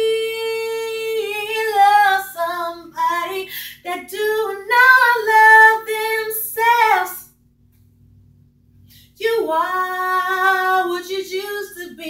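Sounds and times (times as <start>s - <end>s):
woman singing a cappella: 0.0s - 7.3s, 9.2s - 12.0s.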